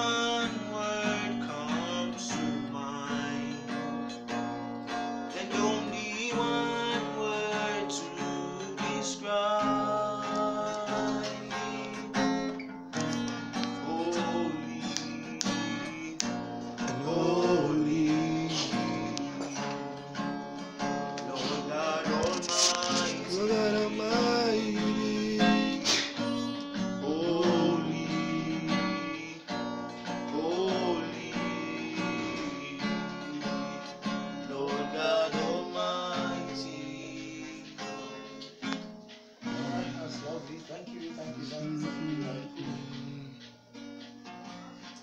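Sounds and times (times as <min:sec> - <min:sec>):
person singing: 0:00.0 - 0:43.6
acoustic guitar chords: 0:00.0 - 0:45.0.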